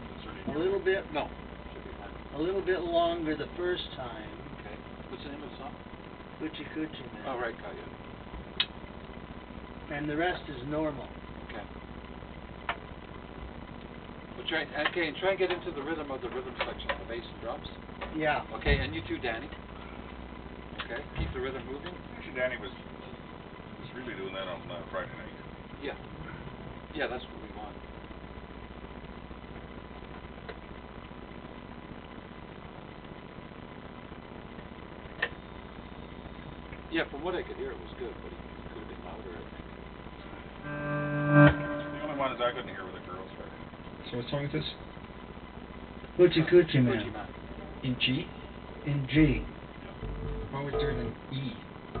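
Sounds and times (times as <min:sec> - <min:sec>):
guitar amplifier hum: 0:00.0 - 0:52.0
faint clicks: 0:08.6 - 0:09.0.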